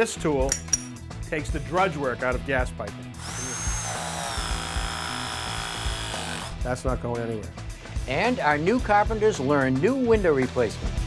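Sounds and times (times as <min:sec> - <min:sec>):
background music: 0:00.0 - 0:11.0
press tool motor whine: 0:03.2 - 0:06.6.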